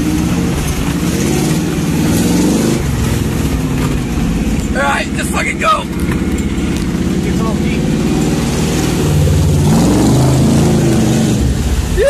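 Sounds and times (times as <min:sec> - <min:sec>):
engine revving hard: 0:00.0 - 0:11.9.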